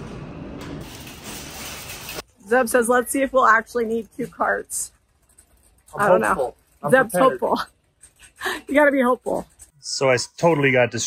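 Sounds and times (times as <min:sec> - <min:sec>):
shopping cart rattling: 0:00.8 - 0:02.3.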